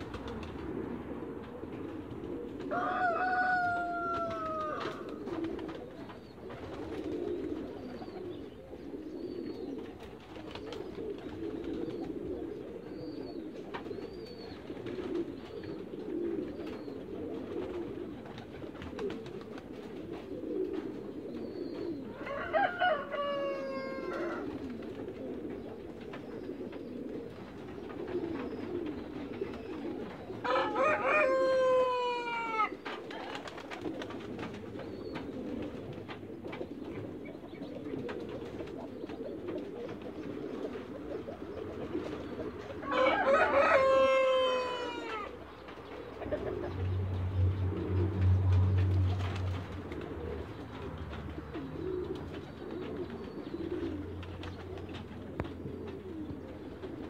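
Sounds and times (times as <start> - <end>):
low cooing: 0.0 - 57.0.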